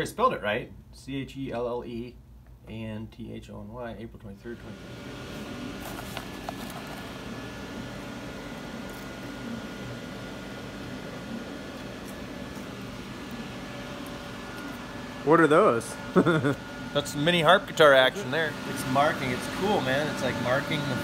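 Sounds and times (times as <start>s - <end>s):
machine fans whirring: 3.9s - 21.0s.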